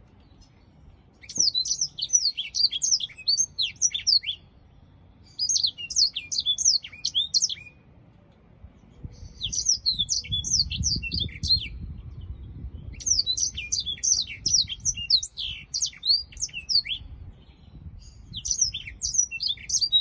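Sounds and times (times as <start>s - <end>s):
canary singing: 0.2s - 7.9s, 9.1s - 20.0s.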